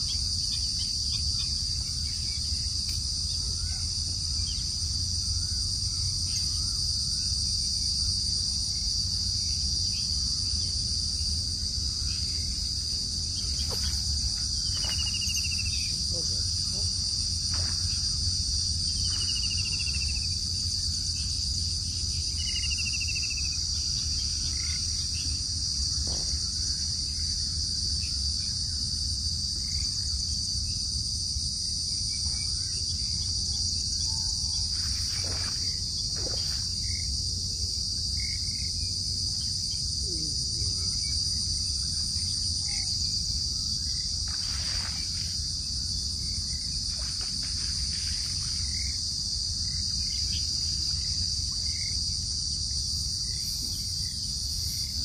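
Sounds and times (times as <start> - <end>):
insects chirping: 0.0 - 55.0.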